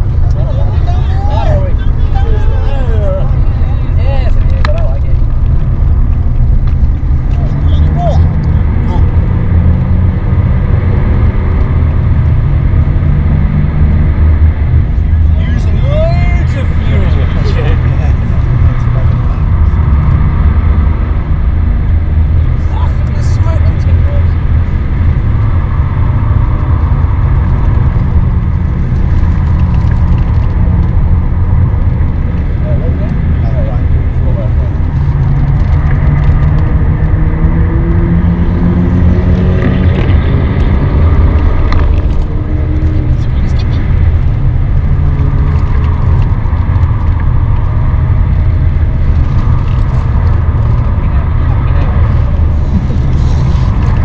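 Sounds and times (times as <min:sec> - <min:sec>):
car engine droning under load: 0:00.0 - 0:54.0
road and tyre noise: 0:00.0 - 0:54.0.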